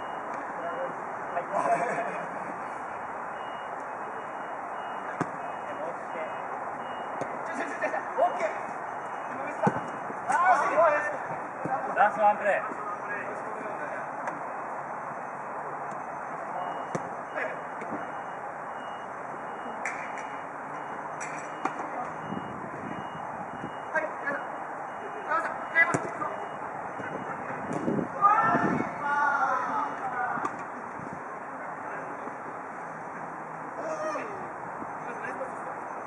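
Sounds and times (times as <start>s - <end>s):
distant shouts of players: 7.5s - 12.4s, 28.1s - 30.6s, 33.7s - 34.5s.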